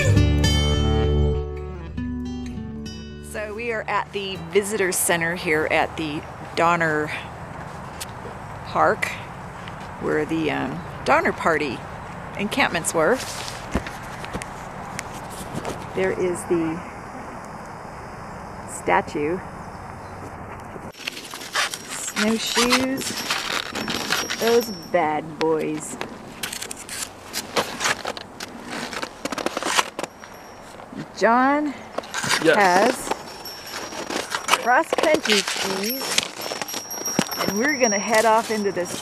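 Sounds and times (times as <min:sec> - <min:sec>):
footsteps on snowy road: 0:13.0 - 0:16.0, 0:20.5 - 0:24.9, 0:25.6 - 0:31.2, 0:32.0 - 0:39.0.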